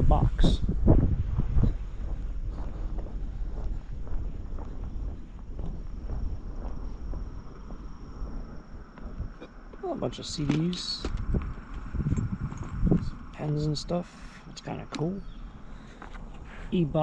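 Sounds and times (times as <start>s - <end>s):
wind buffeting microphone: 0.0s - 17.0s
footsteps on asphalt: 0.4s - 17.0s.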